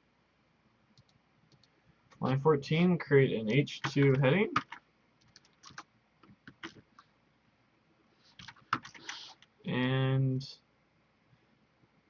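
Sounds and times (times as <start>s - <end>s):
computer mouse clicks: 1.0s - 1.8s, 3.5s - 7.1s.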